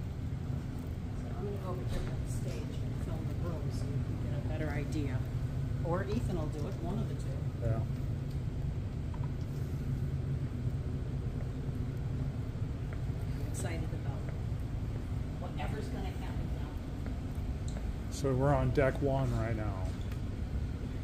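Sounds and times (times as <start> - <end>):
low rumble of ship interior: 0.0 - 21.0.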